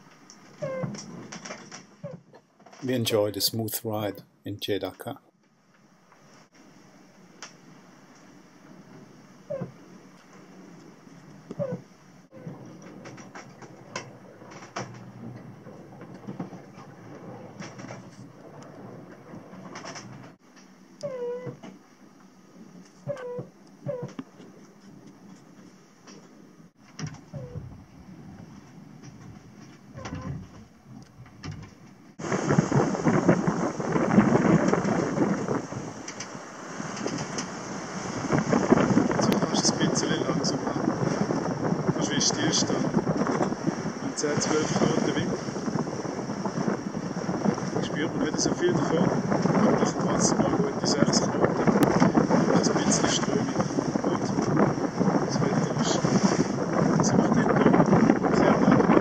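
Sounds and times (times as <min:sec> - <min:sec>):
boat creaking and clicking: 0:00.0 - 0:59.0
wind noise on microphone: 0:08.6 - 0:20.4, 0:26.8 - 0:59.0.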